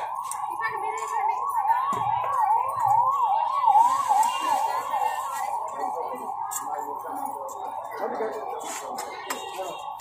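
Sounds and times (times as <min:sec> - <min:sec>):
electronic siren yelping: 0:00.0 - 0:06.5.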